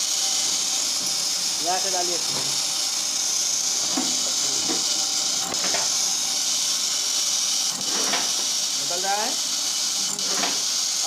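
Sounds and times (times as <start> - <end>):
machine running with steady hiss: 0.0 - 11.0.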